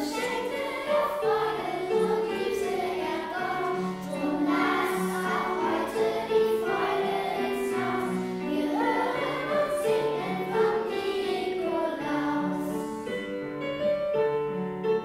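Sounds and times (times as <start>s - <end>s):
children's choir singing: 0.0s - 13.3s.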